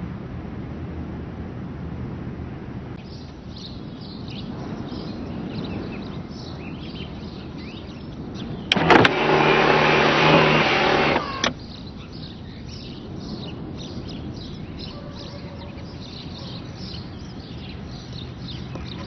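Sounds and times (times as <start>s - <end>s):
birds chirping: 3.0s - 19.0s
clicks: 8.7s - 11.6s
electric roof motor whine: 8.7s - 11.6s.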